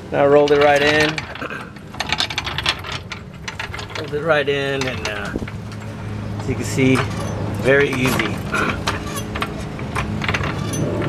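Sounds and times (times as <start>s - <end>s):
floor jack rattling on concrete: 0.4s - 11.0s.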